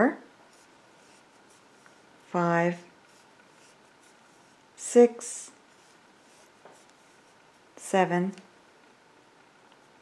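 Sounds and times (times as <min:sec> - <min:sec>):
crochet hook rubbing yarn: 0:00.4 - 0:04.7, 0:05.6 - 0:07.7.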